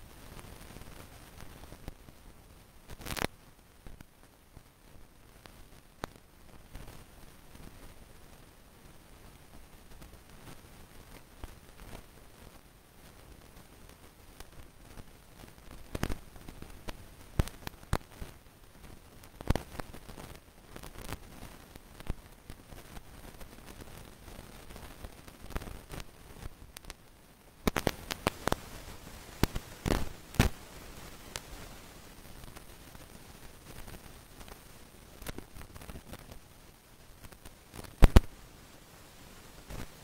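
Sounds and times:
low background hiss: 0:00.0 - 0:40.0
sharp clicks and crackles: 0:02.9 - 0:08.4, 0:09.1 - 0:40.0.

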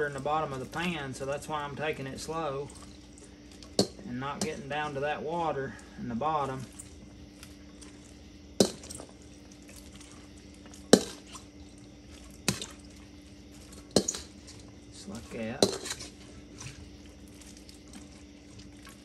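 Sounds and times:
scoop scraping a pan: 0:00.0 - 0:19.0
steady low hum: 0:00.0 - 0:19.0.

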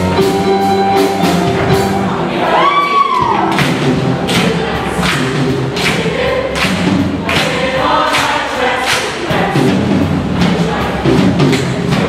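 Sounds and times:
choir singing with accompaniment: 0:00.0 - 0:12.0
steady beat of sharp hits: 0:03.2 - 0:12.0.

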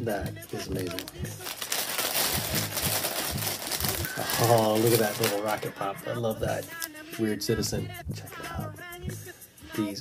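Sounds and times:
plastic bag crinkling: 0:00.5 - 0:05.7.

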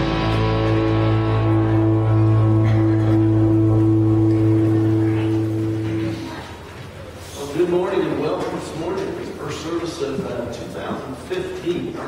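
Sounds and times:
band holding sustained chord: 0:00.0 - 0:06.7.

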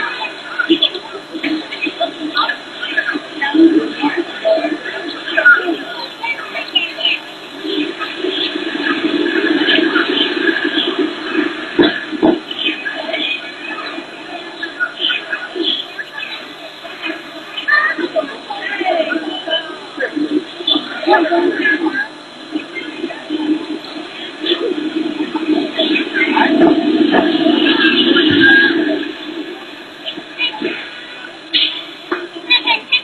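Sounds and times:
people chattering: 0:00.0 - 0:33.0.

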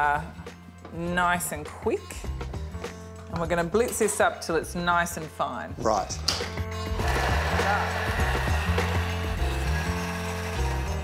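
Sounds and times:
background music: 0:00.0 - 0:11.0
food processor whirring: 0:07.0 - 0:11.0.

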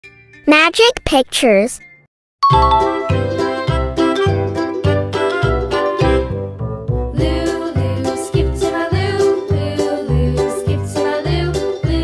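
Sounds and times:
cheerful children's music: 0:00.0 - 0:12.0
short chime: 0:02.4 - 0:03.2.

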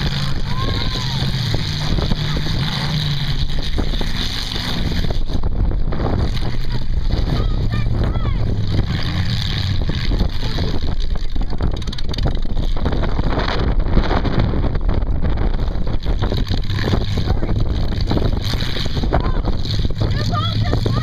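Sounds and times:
crowd voices: 0:00.0 - 0:03.1, 0:06.2 - 0:09.1, 0:18.6 - 0:21.0
car engines running hard: 0:00.0 - 0:21.0
wheel spinning in dirt: 0:00.0 - 0:21.0.

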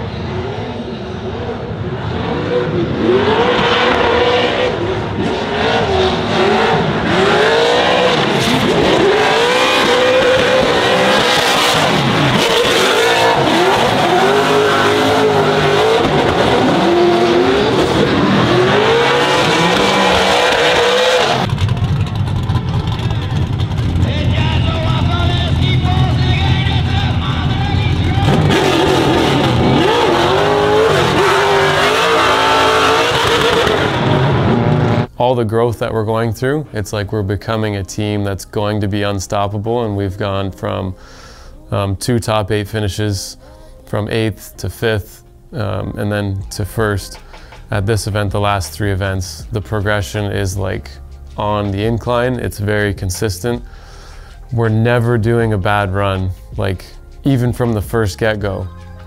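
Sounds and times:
car engines revving: 0:00.0 - 0:35.1.

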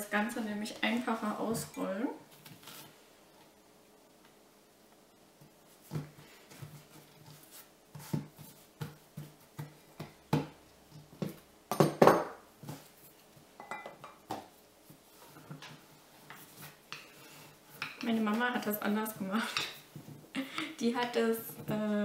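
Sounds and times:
hands patting dough: 0:05.4 - 0:11.6.

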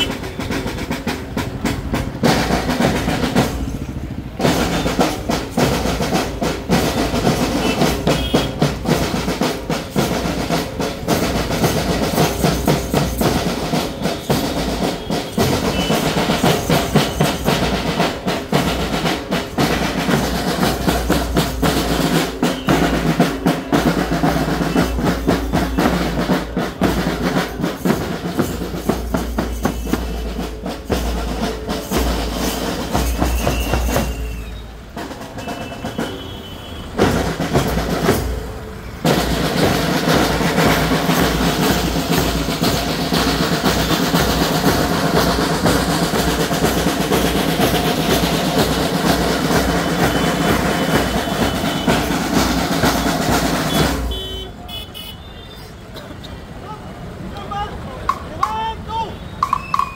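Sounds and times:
snare drums marching beat: 0:00.0 - 0:55.6, 0:57.6 - 0:59.9
cymbals: 0:00.0 - 0:56.0.

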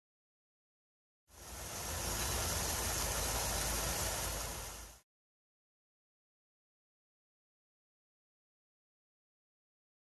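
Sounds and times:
roadside traffic rumble and hiss: 0:01.3 - 0:05.0.

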